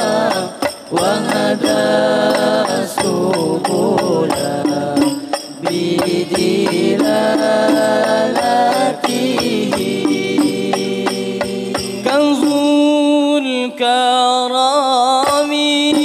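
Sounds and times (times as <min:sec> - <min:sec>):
frame drums beating: 0:00.0 - 0:12.9
young men singing: 0:00.0 - 0:16.0.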